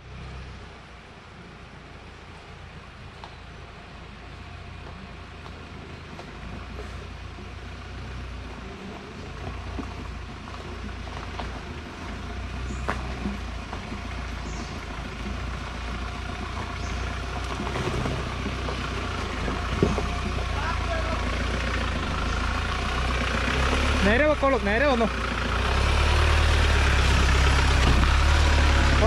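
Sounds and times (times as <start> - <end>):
engine running at low revs: 0.0 - 29.0.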